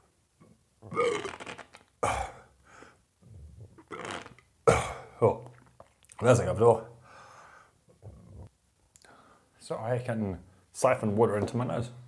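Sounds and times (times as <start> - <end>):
burp-like sounds: 0.8 - 2.5, 3.3 - 5.2.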